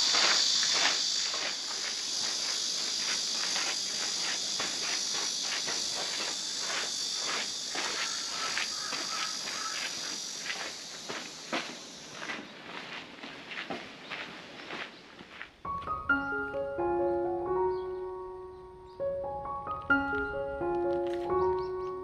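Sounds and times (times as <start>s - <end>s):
high-pitched insect drone: 0.0s - 12.4s
footsteps on sandy dirt path: 0.0s - 16.4s, 19.6s - 22.0s.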